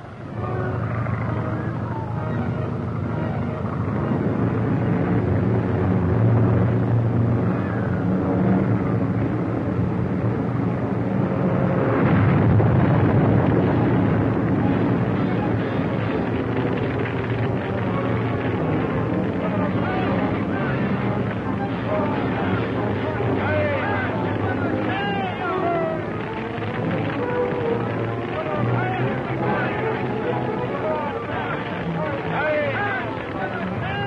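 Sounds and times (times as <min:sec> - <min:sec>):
propeller plane engine droning: 0:00.0 - 0:34.0.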